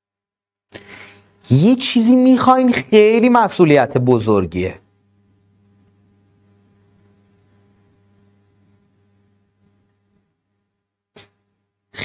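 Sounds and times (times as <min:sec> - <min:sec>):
faint electrical hum: 0:00.7 - 0:12.0.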